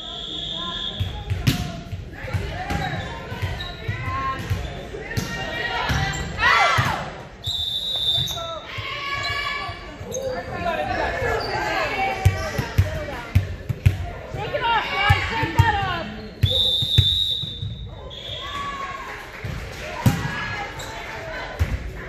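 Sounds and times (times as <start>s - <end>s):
referee's whistle: 0.0s - 1.3s, 7.4s - 9.4s, 16.0s - 18.8s
players and spectators shouting: 2.1s - 7.2s, 8.2s - 13.3s, 14.0s - 16.7s.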